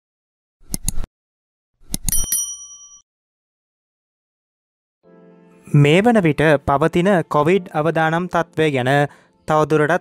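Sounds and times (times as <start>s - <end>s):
bright bell ding: 2.1s - 3.0s.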